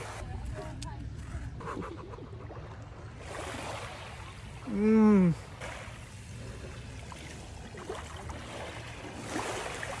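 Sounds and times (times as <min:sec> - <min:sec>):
faint surf: 0:00.0 - 0:10.0.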